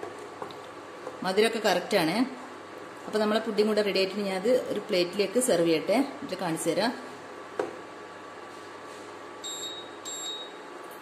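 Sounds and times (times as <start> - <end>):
short electronic beeps: 9.4 - 10.6.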